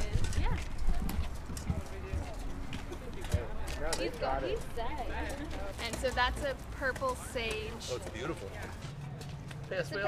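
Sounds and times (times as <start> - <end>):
faint voices talking: 0.0 - 10.0.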